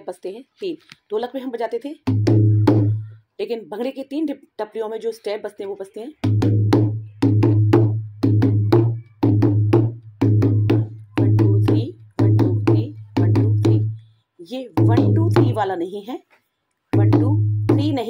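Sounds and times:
hand drum played with fingers: 0:02.0 - 0:03.2, 0:06.2 - 0:14.0, 0:14.7 - 0:15.7, 0:17.0 - 0:18.0.

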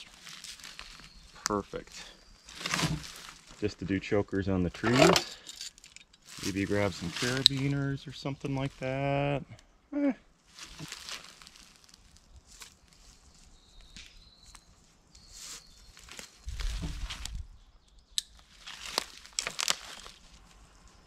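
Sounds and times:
rope rubbing against bark: 0:00.0 - 0:03.7, 0:06.2 - 0:09.0, 0:10.5 - 0:17.4.

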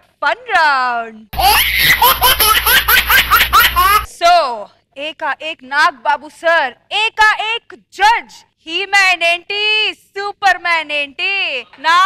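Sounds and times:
person laughing in short bursts: 0:01.4 - 0:04.1
steady low hum: 0:01.4 - 0:04.1.

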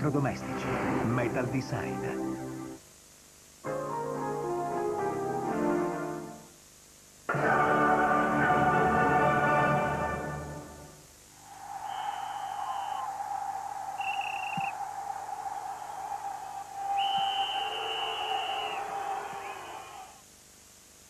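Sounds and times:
hiss: 0:11.3 - 0:20.2
high whistle-like tones: 0:11.4 - 0:20.2.

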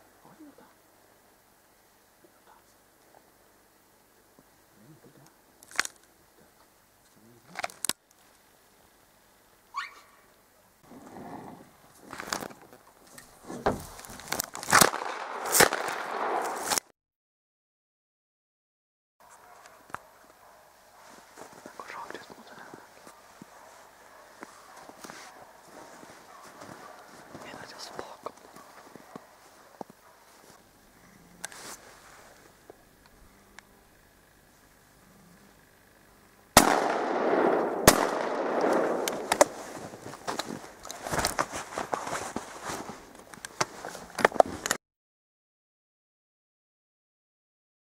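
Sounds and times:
gunshots with rolling echo: 0:14.8 - 0:16.7, 0:36.6 - 0:39.6
footsteps crunching through snow: 0:20.3 - 0:30.6, 0:39.1 - 0:44.6.

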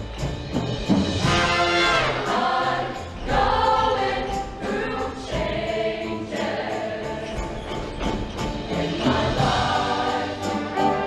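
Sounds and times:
instrumental accompaniment: 0:00.0 - 0:11.0
choir singing in harmony: 0:01.2 - 0:11.0.

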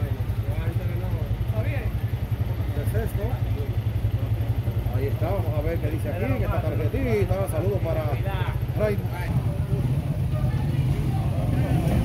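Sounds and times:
vehicle engine running: 0:00.0 - 0:12.0
voices talking: 0:00.0 - 0:12.0.

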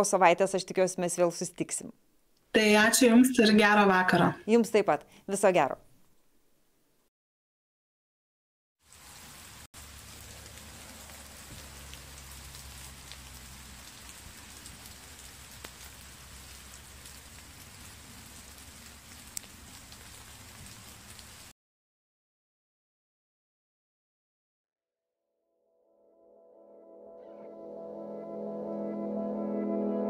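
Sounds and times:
rain pattering on foliage: 0:08.8 - 0:21.5.

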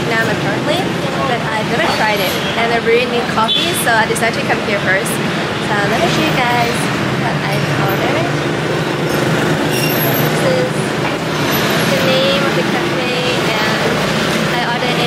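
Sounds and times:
people talking: 0:00.0 - 0:08.5, 0:09.7 - 0:15.0
city street traffic: 0:00.0 - 0:15.0.

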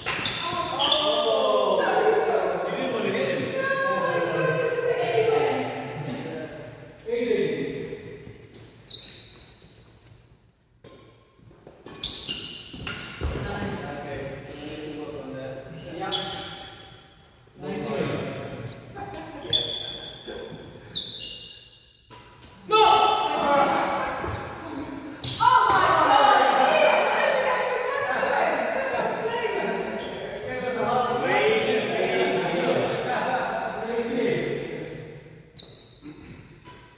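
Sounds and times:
rackets hitting shuttlecock: 0:00.0 - 0:00.8, 0:10.8 - 0:13.5, 0:22.0 - 0:23.2
players' voices: 0:00.0 - 0:08.7, 0:12.8 - 0:16.8, 0:17.5 - 0:21.0, 0:22.5 - 0:35.4.

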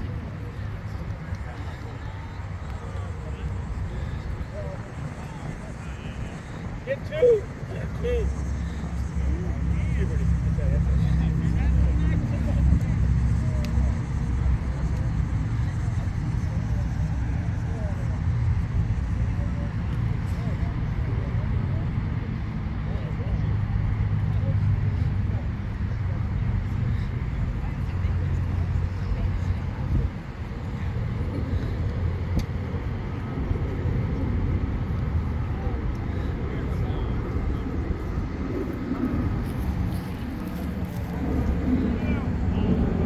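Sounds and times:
distant voices: 0:00.0 - 0:43.0
steady low rumble: 0:00.0 - 0:43.0.

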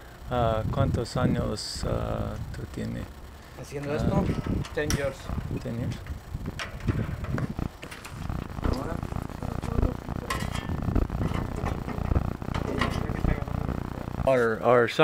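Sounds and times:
condenser fan running: 0:00.0 - 0:15.0
rumble of moving air: 0:04.0 - 0:14.2.

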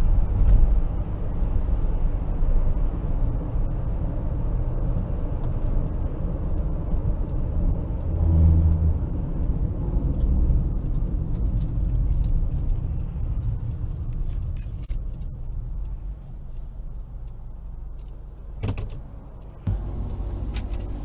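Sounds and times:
car road noise rumble: 0:00.0 - 0:21.0
light ticking rattle: 0:04.9 - 0:21.0.

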